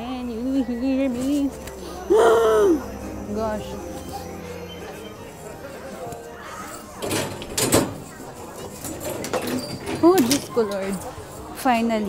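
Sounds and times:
distant voices: 0:00.0 - 0:11.6
faint music: 0:00.0 - 0:12.0.

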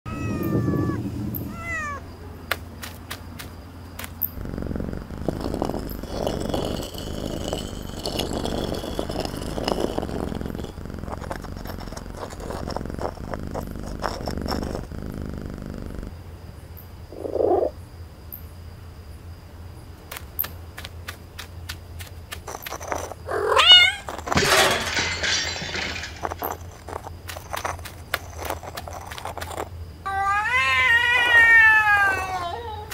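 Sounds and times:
low rough rumble: 0:00.1 - 0:02.2, 0:04.4 - 0:16.2
cartoon cat calls: 0:00.1 - 0:02.4, 0:30.1 - 0:32.9.

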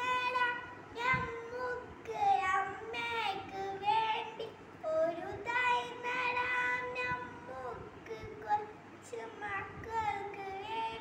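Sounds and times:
child singing: 0:00.0 - 0:11.0.

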